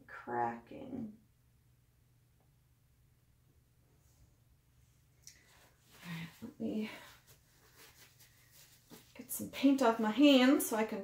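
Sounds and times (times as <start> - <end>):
gloved hands rustling on paper towel: 5.4 - 9.9.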